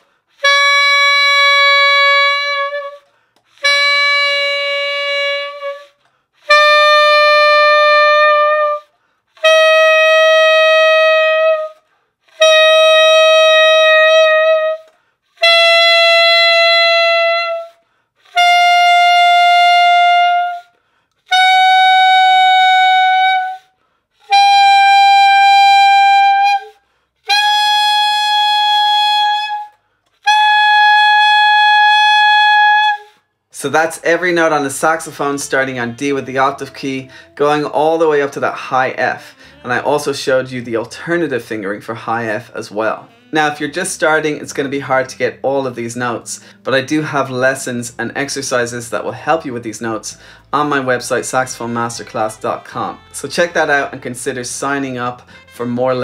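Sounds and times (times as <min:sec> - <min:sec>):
alto saxophone long notes: 0:00.3 - 0:56.0.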